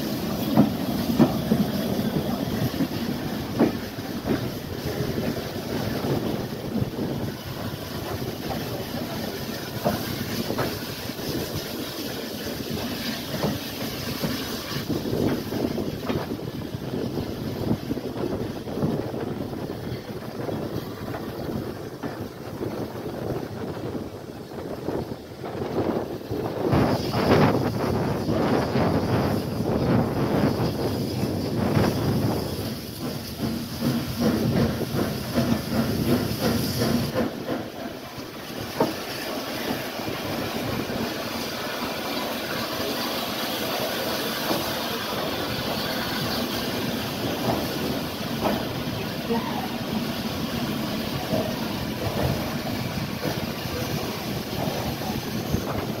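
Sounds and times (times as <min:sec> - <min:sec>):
train running noise: 0:00.0 - 0:56.0.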